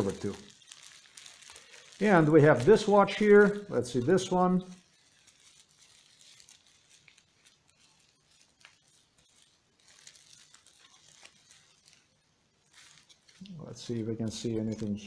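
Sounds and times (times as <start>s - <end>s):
plastic bag crinkling: 0.0s - 15.0s.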